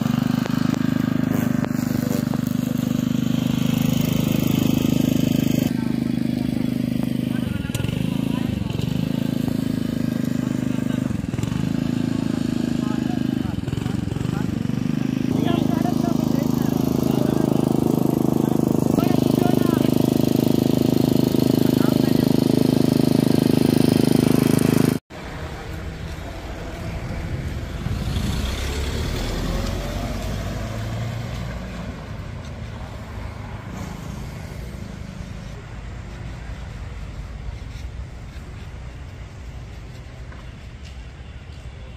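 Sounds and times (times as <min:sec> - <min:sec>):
lawn mower engine running: 0:00.0 - 0:40.4
low rumble of street traffic: 0:00.0 - 0:41.9.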